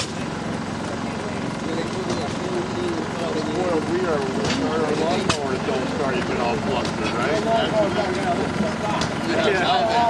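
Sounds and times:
engine-like running noise: 0.0s - 10.0s
indistinct voices talking: 0.0s - 10.0s.

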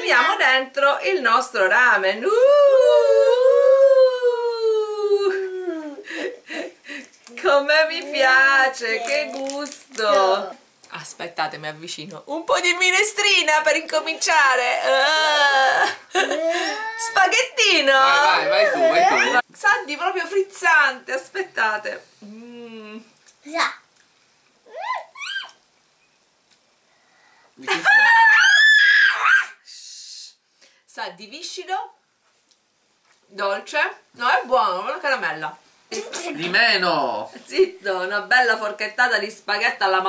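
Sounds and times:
person's drawn-out vocal sound: 2.4s - 6.1s
high-pitched vocal squeaks: 24.7s - 25.6s.

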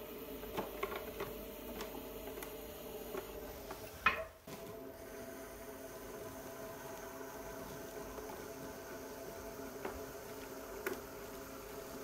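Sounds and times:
pottery wheel humming: 0.0s - 12.0s.

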